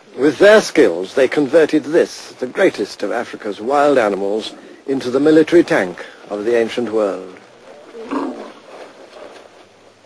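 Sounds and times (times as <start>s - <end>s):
elephant calling: 7.7s - 9.0s.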